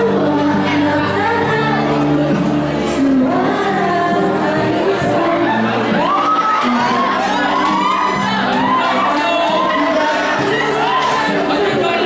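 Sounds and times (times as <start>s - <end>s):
crowd cheering and shouting: 0.0s - 12.0s
pop backing track: 0.0s - 12.0s.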